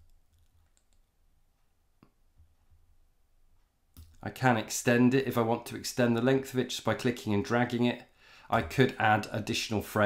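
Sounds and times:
computer mouse clicks: 0:00.0 - 0:01.2, 0:03.9 - 0:04.2.

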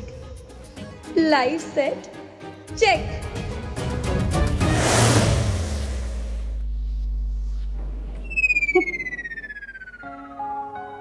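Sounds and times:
descending whistle-like synth tone: 0:08.1 - 0:10.8.

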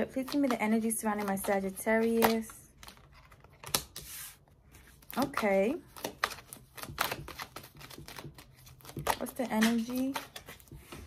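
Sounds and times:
cards rustling while shuffled: 0:00.0 - 0:11.0.

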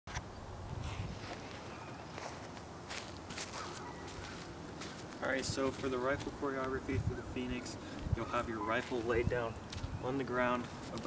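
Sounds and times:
soft footsteps on dry grass: 0:00.7 - 0:11.0.

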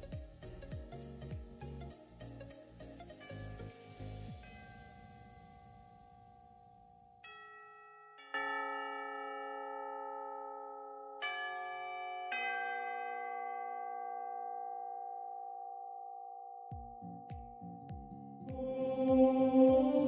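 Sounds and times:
ambient bell-like chords music: 0:00.0 - 0:08.7.

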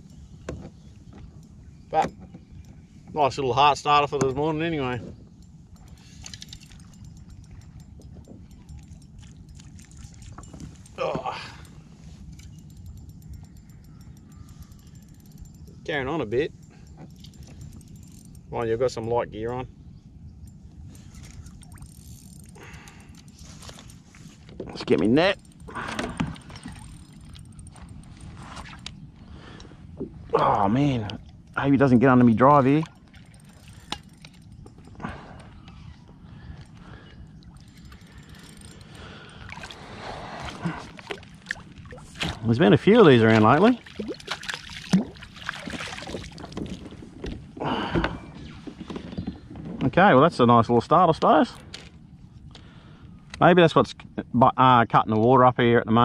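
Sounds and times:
low steady rumble: 0:00.0 - 0:48.8
water sloshing around kayak: 0:00.1 - 0:18.6, 0:20.3 - 0:49.8
fishing reel ticking: 0:05.2 - 0:11.0, 0:11.6 - 0:19.6, 0:20.4 - 0:24.2, 0:25.0 - 0:28.3, 0:32.6 - 0:35.0, 0:36.4 - 0:39.5.

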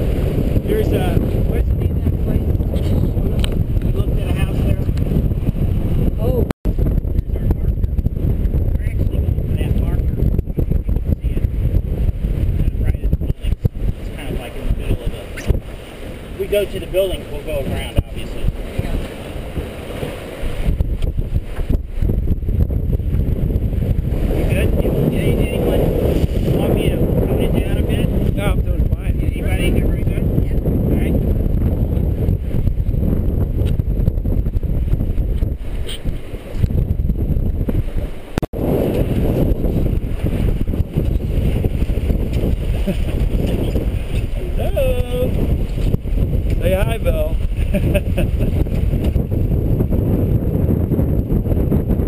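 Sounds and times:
water rushing along boat hull: 0:00.0 - 0:52.0
wind buffeting microphone: 0:00.0 - 0:52.0.

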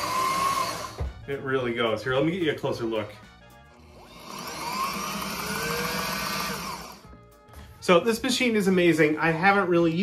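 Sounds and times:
sewing machine motor whine: 0:00.0 - 0:01.0, 0:03.8 - 0:07.1.

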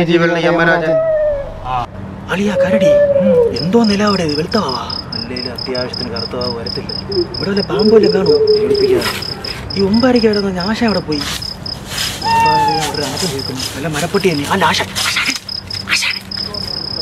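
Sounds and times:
men talking: 0:00.0 - 0:11.4, 0:12.2 - 0:15.4, 0:16.4 - 0:17.0
cricket chirping: 0:02.4 - 0:17.0.

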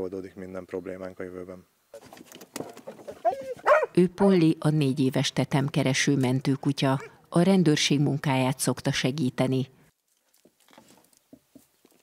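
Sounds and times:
dog yelping: 0:03.0 - 0:04.0
faint rustling and clicks: 0:10.0 - 0:12.0.

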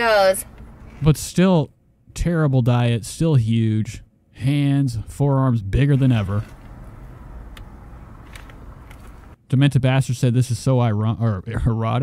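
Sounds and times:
car interior hum: 0:00.0 - 0:01.1, 0:04.5 - 0:09.4.

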